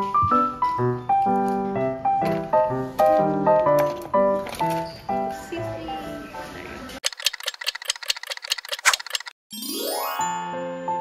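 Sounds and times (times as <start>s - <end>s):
clock ticking rapidly: 7.0s - 9.4s.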